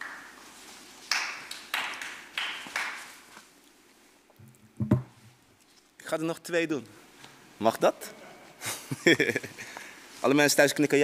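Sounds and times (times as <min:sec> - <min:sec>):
hand claps in reverberant hall: 0:00.0 - 0:03.4.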